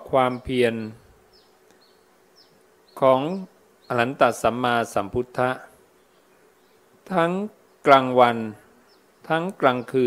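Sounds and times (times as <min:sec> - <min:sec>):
man speaking: 0:00.0 - 0:01.0, 0:03.0 - 0:05.8, 0:07.1 - 0:08.7, 0:09.3 - 0:10.0
faint steady buzz: 0:00.0 - 0:10.0.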